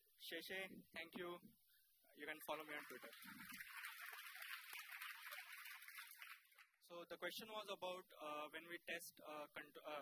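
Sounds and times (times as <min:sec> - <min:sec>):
audience applauding: 0:02.6 - 0:06.8.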